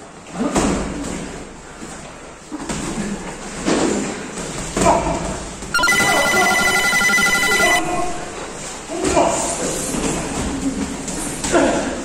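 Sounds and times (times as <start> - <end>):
electronic bell tone: 5.8 - 8.3.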